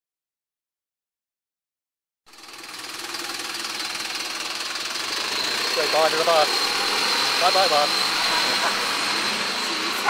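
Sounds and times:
diesel bus engine pulling away: 0:02.3 - 0:10.0
high-pitched whine: 0:03.7 - 0:10.0.

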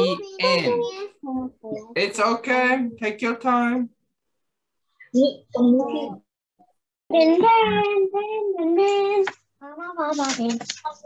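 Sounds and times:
child singing: 0:07.1 - 0:11.0.

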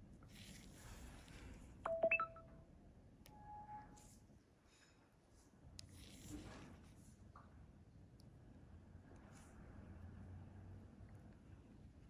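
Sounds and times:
short electronic beeps: 0:01.9 - 0:02.5.

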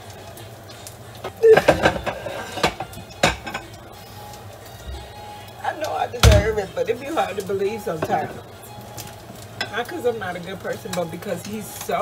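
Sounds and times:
dishes and utensils clinking: 0:01.2 - 0:03.8, 0:06.2 - 0:08.4.

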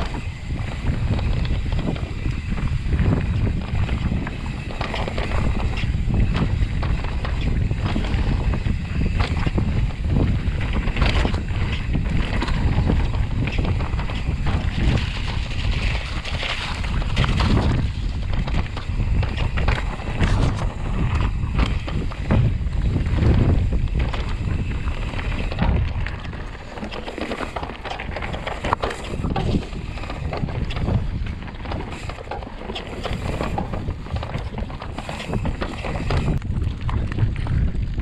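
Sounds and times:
bike rattling and knocking: 0:00.0 - 0:38.0
bike tyres rolling over dirt: 0:00.0 - 0:38.0
wind rumble on microphone: 0:00.0 - 0:38.0.

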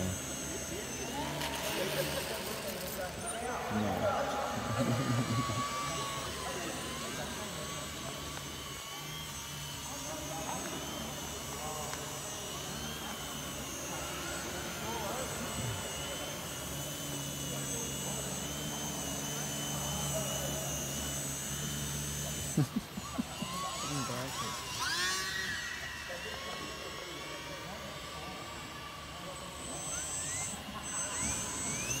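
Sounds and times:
small electric motor whining: 0:00.0 - 0:32.0.

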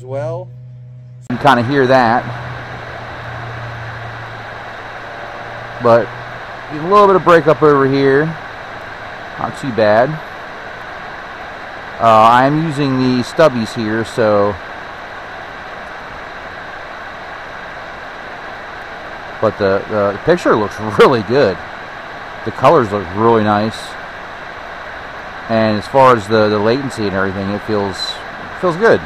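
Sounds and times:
cooling fan whirring: 0:00.0 - 0:29.0
low hum with hiss: 0:00.0 - 0:29.0.

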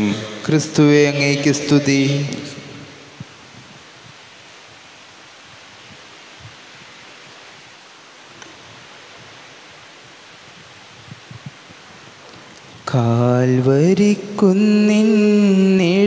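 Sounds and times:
quiet background hiss: 0:00.0 - 0:16.0
faint small clicks: 0:08.4 - 0:08.6.

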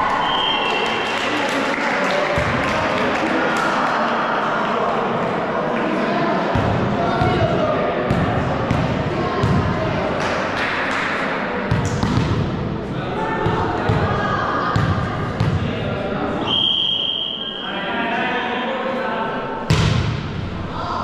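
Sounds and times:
indistinct voices echoing: 0:00.0 - 0:21.0
volleyball bouncing on floor: 0:08.1 - 0:09.7, 0:11.7 - 0:12.5, 0:13.4 - 0:14.2, 0:14.8 - 0:15.7.

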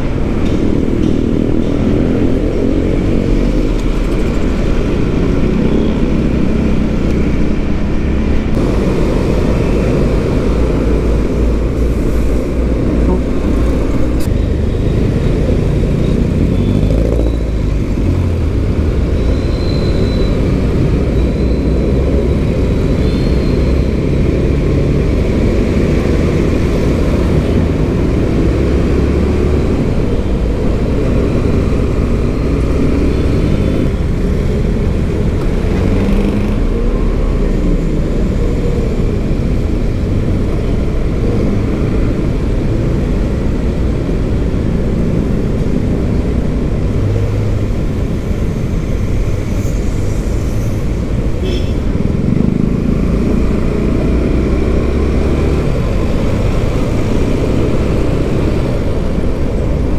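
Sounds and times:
wind and road noise: 0:00.0 - 0:59.9
motorcycle engine: 0:51.4 - 0:59.1.

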